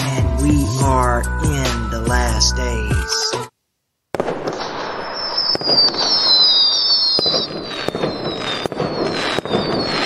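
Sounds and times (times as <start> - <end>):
fireworks bangs: 4.1 - 10.0
fireworks crackling rumble: 4.1 - 10.0
falling fireworks whistles: 4.2 - 10.0.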